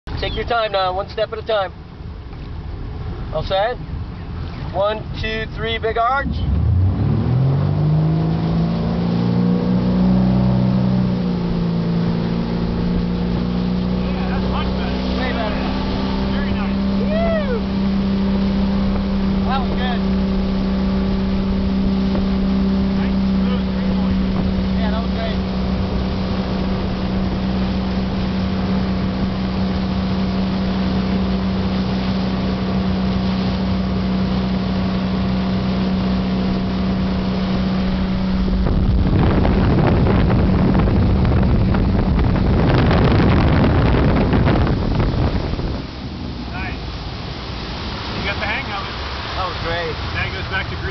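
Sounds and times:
boat engine running: 0.0s - 50.9s
rushing water spray and wind: 0.1s - 50.9s.

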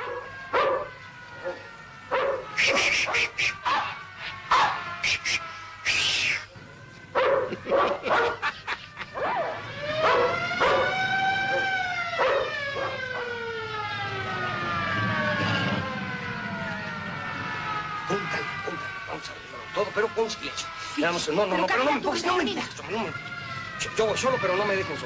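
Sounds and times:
dog barking: 0.0s - 4.8s, 7.2s - 8.5s, 10.0s - 13.0s
siren wailing: 0.0s - 25.0s.

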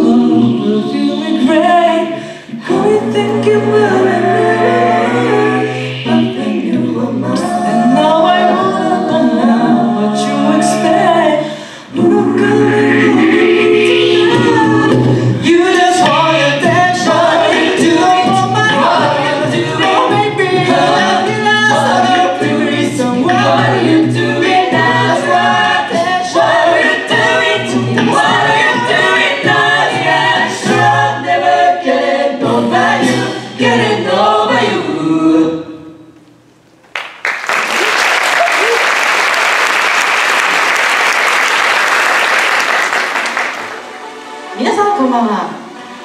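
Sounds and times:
a cappella group singing: 0.0s - 36.2s
vocal percussion beat: 12.0s - 26.2s.

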